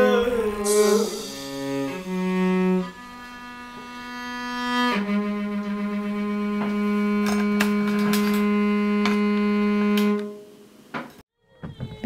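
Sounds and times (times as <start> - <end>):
cello bowed low note: 0.0 - 10.4.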